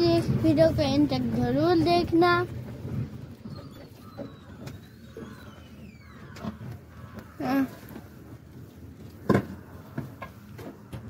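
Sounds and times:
road rumble: 0.0 - 11.0.

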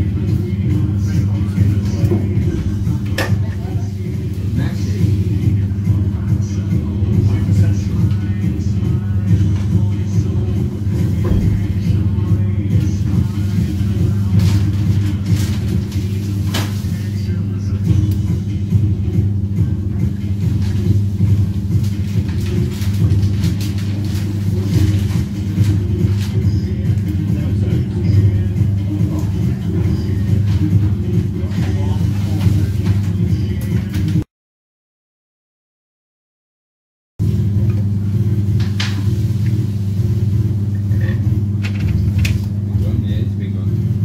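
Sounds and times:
machinery low hum: 0.0 - 34.2, 37.2 - 44.0.

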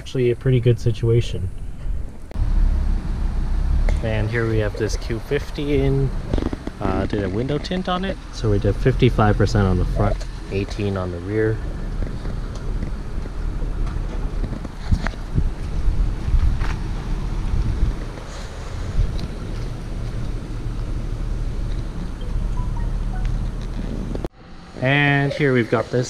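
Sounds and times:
wind rumbling on microphone: 11.6 - 22.6.

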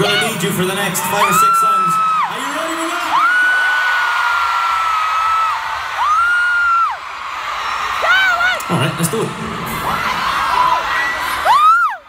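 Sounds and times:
arena crowd cheering: 0.0 - 12.0.

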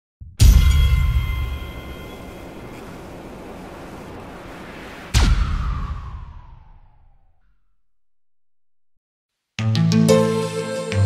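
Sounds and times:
windy noise wash: 1.6 - 7.2.

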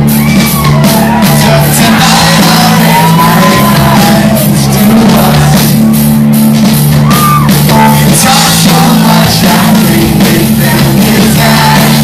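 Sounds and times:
punk rock band playing: 0.0 - 12.0
loud vocals: 0.4 - 6.0, 7.0 - 12.0.

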